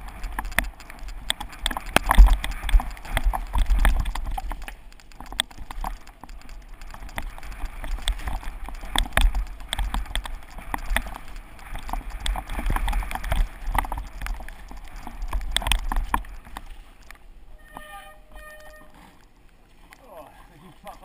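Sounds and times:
mountain bike rattling downhill: 0.0s - 19.2s.

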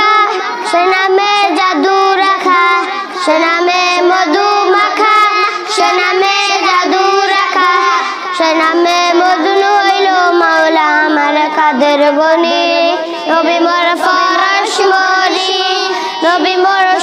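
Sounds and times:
boys singing devotional song: 0.0s - 17.0s.

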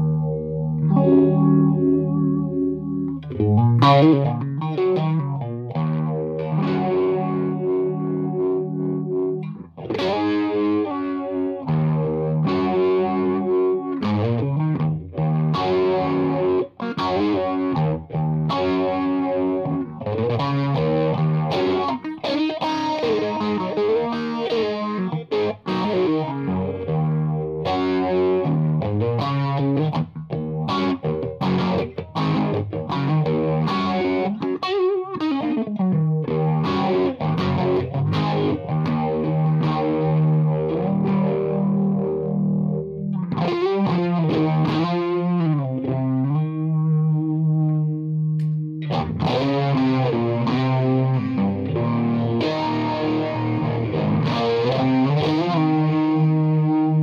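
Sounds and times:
distorted electric guitar lead: 0.0s - 57.0s.

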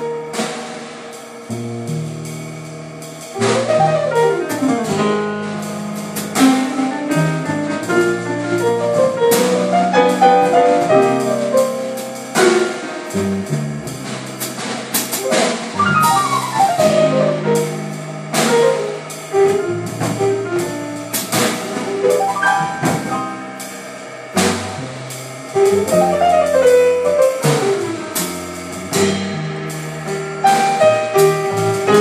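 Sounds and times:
double bass: 0.0s - 32.0s
drum and cymbal strokes: 0.0s - 32.0s
piano: 0.0s - 32.0s.

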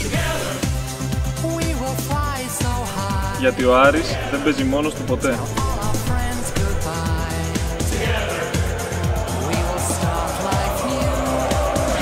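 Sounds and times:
music with steady beat: 0.0s - 12.0s
sliding deep bass notes: 2.7s - 8.8s.

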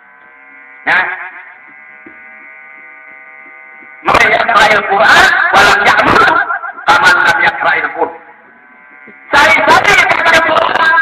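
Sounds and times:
steady electrical buzz: 0.0s - 11.0s.

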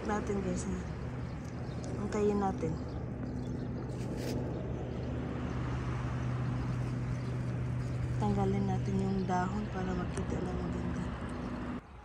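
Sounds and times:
low motor hum: 0.0s - 11.8s.

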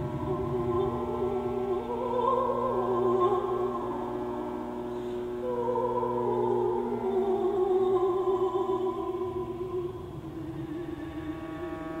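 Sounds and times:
electronic drone: 0.0s - 12.0s
sustained sung note: 0.0s - 12.0s.

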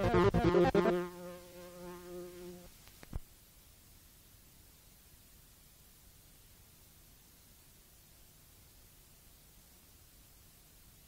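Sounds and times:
trance music beat: 0.0s - 1.9s
held synth note: 0.0s - 2.6s.

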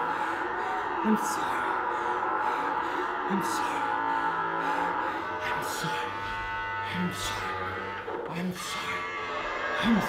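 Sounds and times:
faint steady drone: 0.0s - 10.0s
low vocal moans: 0.0s - 10.0s.

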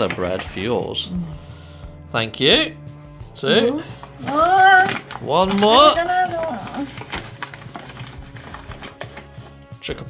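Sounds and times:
paper flour bag rustling: 3.2s - 9.6s.

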